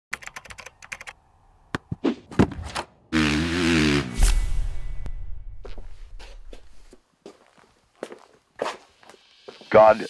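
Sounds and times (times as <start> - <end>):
low rumble: 4.2 - 6.8
footsteps on hard floor: 5.6 - 9.6.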